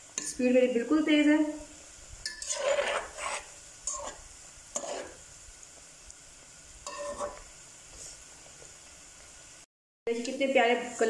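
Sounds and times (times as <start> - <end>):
utensil stirring oil: 0.0 - 0.6, 1.7 - 9.4
food sizzling in oil: 0.0 - 11.0.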